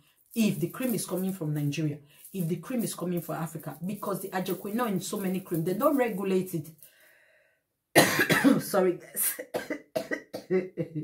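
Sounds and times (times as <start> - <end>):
woman coughing: 8.0 - 10.8.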